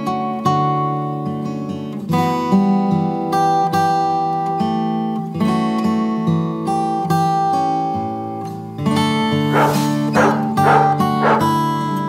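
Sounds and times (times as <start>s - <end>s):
acoustic guitar music: 0.0s - 12.0s
dog barking: 9.4s - 11.8s.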